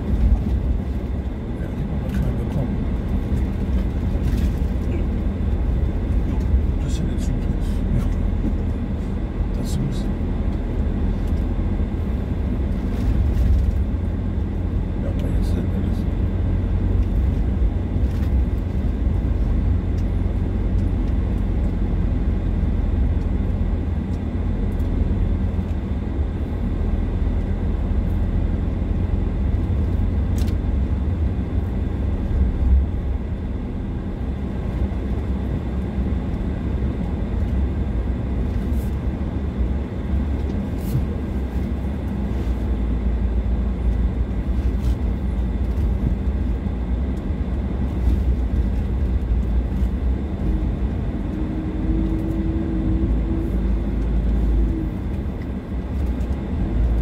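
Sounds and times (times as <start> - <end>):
car engine and tyres rumbling: 0.0 - 57.0.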